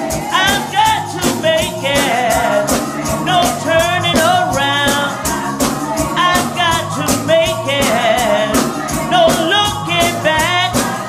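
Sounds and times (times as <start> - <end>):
instruments with steady beat: 0.0 - 11.0
tambourines shaking: 0.0 - 11.0
women singing gospel: 0.0 - 11.0.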